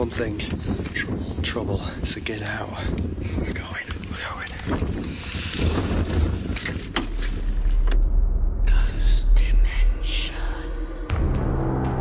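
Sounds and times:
wind buffeting microphone: 0.0s - 11.2s.

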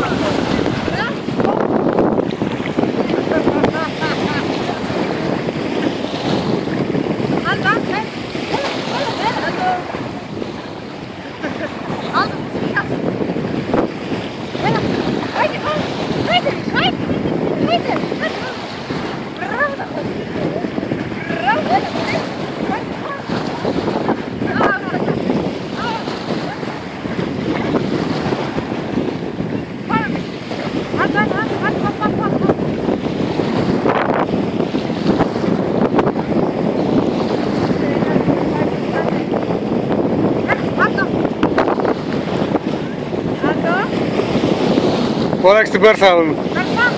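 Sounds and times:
small sea waves lapping: 0.0s - 46.9s
wind rumbling on microphone: 0.0s - 46.9s.

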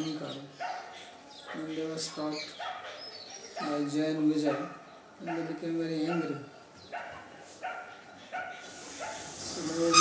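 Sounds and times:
dog barking: 0.6s - 1.8s, 2.6s - 5.5s, 6.1s - 9.4s.

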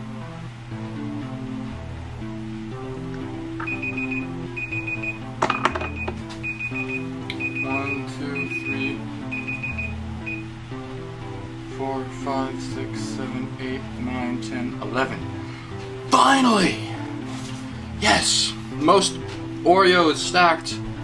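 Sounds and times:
background guitar music: 0.0s - 21.0s
timer alarm beeping: 3.6s - 5.3s, 5.9s - 10.5s.

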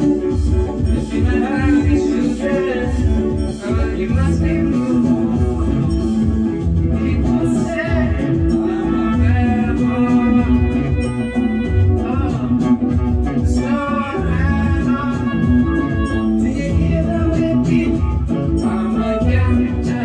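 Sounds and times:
bass: 0.0s - 20.0s
guitar: 0.0s - 20.0s
man singing: 0.0s - 20.0s
steady low beat: 0.0s - 20.0s.

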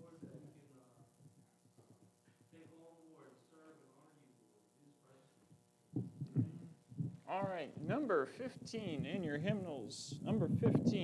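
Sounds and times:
faint room murmur: 0.0s - 11.0s
dull low thumps on wood: 6.0s - 7.2s.

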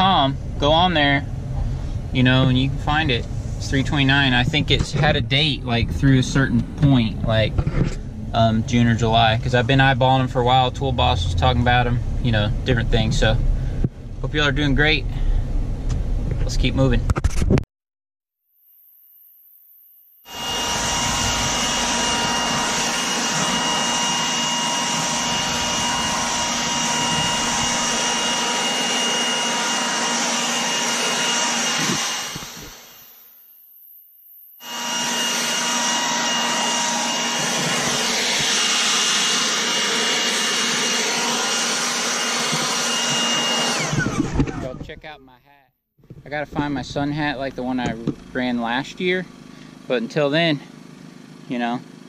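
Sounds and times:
electric blower running: 20.2s - 33.3s, 34.5s - 44.8s.

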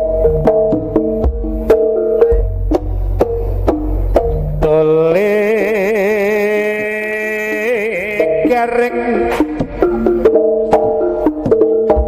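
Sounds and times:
gamelan percussion beats: 0.0s - 5.7s, 6.4s - 12.0s.

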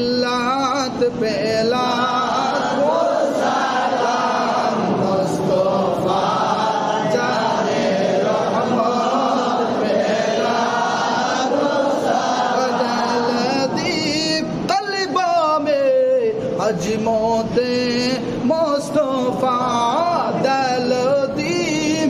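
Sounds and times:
men chanting: 0.0s - 22.0s.

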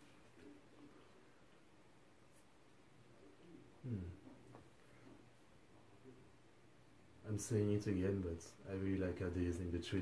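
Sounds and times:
man's low hmm: 3.8s - 4.4s.

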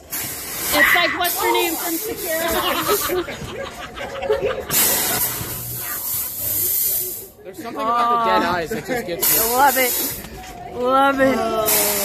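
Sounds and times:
pressurised fog jet hissing: 4.7s - 7.4s, 9.2s - 10.3s.

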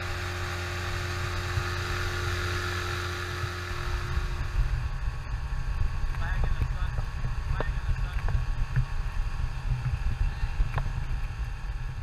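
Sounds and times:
outboard motor droning: 0.0s - 12.0s
wind buffeting microphone: 0.0s - 12.0s.

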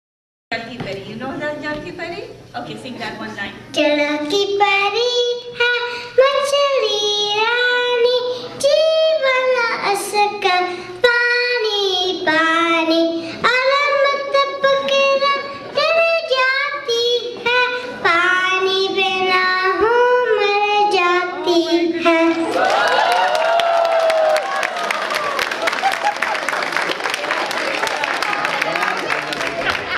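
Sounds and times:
child singing into a microphone: 3.7s - 22.5s.

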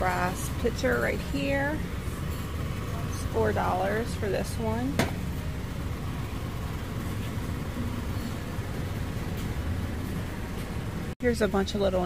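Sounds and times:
store interior hum and rumble: 0.0s - 12.0s.

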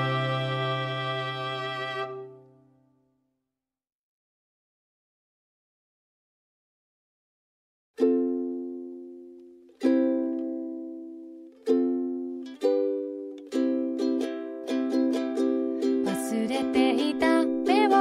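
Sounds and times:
other instruments playing: 0.0s - 2.3s
ukulele strumming: 0.0s - 2.5s, 8.0s - 18.0s.

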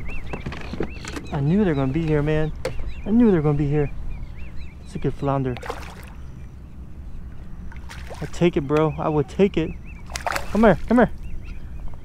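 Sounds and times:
steady low rumble: 0.9s - 12.0s
fish splashing at water surface: 5.6s - 6.1s, 10.1s - 10.6s.

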